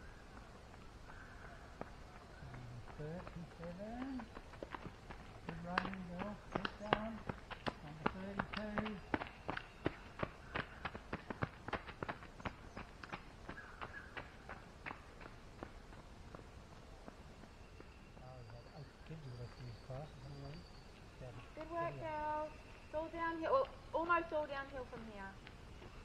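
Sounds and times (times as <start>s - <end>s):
running footsteps on gravel: 0.0s - 18.3s.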